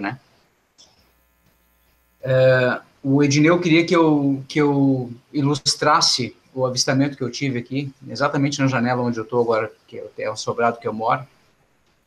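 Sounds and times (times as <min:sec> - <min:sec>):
faint electrical buzz: 0:00.0 - 0:12.0
person speaking: 0:02.2 - 0:11.3.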